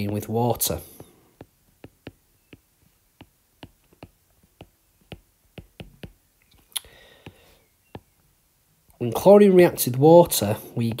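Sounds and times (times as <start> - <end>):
stylus tapping on glass screen: 1.0 - 6.2.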